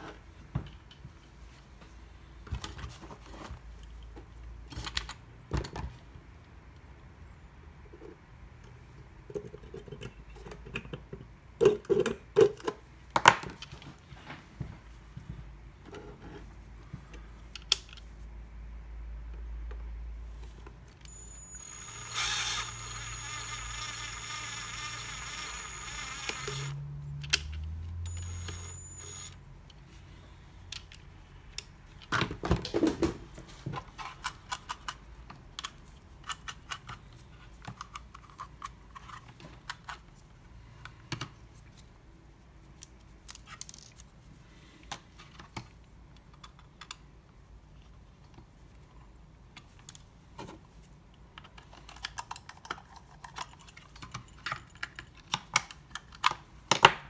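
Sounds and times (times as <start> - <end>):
cordless drill whining: 21.1 - 26.8, 28.1 - 29.4.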